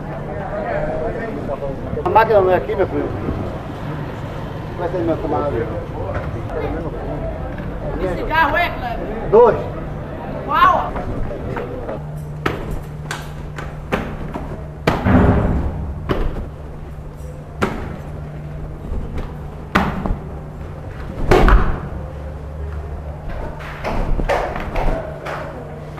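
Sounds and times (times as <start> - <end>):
steady low hum: 0.0 - 25.9.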